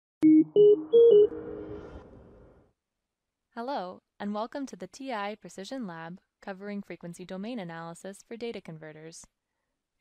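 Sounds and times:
electronic jingle notes: 0.2 - 1.9.

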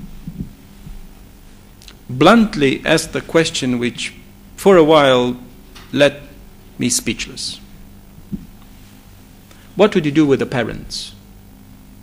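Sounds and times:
faint low thumps: 0.0 - 1.1, 8.1 - 8.6
low electrical hum: 0.0 - 12.0.

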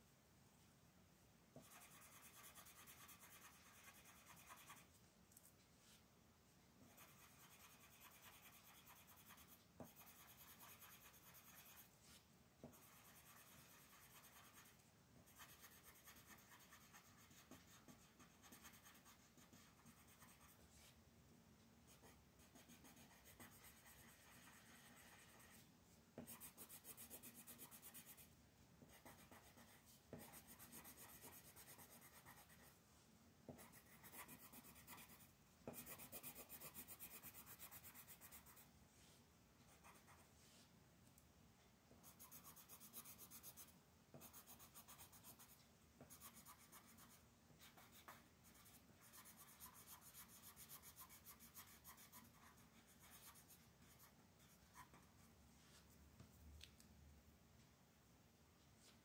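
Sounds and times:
coloured pencil scratching on paper: 1.6 - 4.9, 6.8 - 20.9, 21.9 - 32.7, 33.5 - 38.7, 39.7 - 40.3, 42.0 - 55.2.

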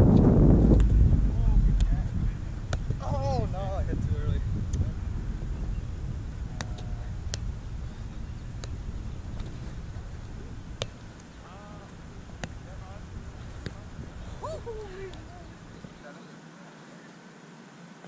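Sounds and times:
wind rumble on microphone: 0.0 - 16.0
ball slapped by hands: 2.7 - 3.0, 10.8 - 11.3, 12.3 - 12.6.

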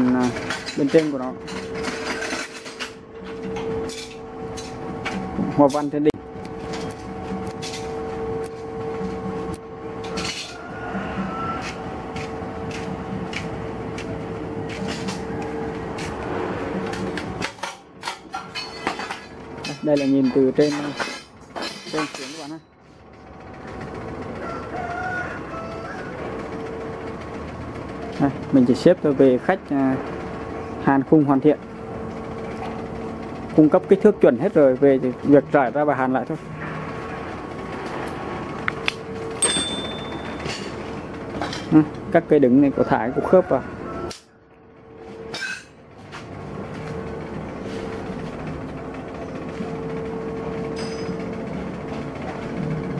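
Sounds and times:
mechanical hum: 0.0 - 52.9.

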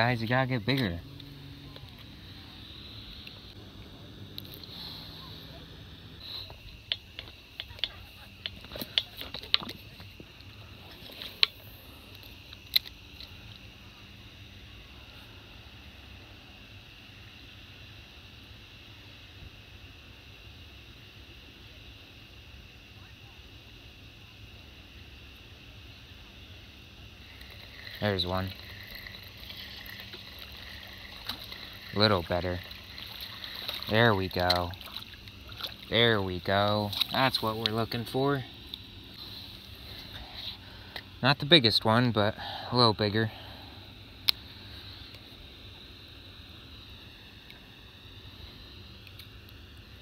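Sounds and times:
faint high-pitched hum: 0.0 - 50.0.

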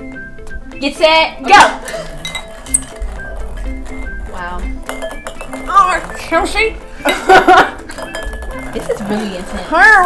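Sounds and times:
background music: 0.0 - 10.0
spoons and balls clinking on bowls: 1.7 - 10.0.

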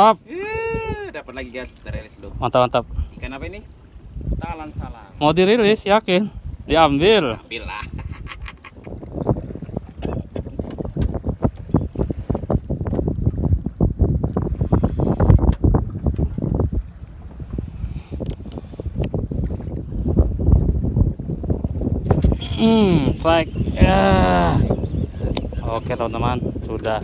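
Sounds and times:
wind buffeting microphone: 0.0 - 27.0
water slapping against boat hull: 9.0 - 14.6, 15.2 - 17.4.

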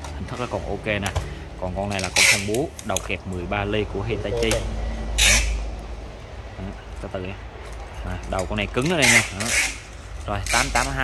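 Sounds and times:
drill chuck scraping rasp: 5.2 - 5.6.

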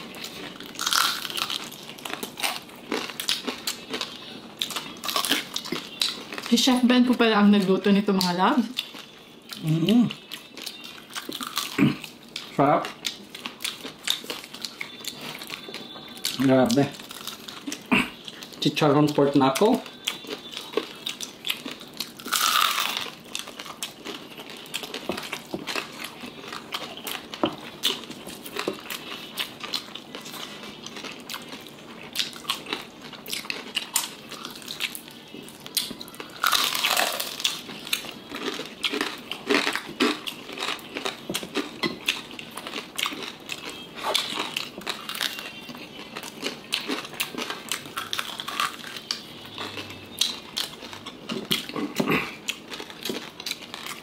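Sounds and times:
crunching of crispy pork skin: 0.0 - 6.5, 8.2 - 18.8, 19.5 - 54.0.

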